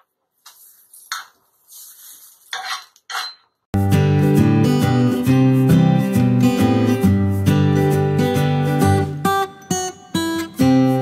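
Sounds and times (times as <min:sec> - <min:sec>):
metal utensils scraping cookware: 0:02.4 - 0:03.5
acoustic guitar music: 0:03.8 - 0:11.0.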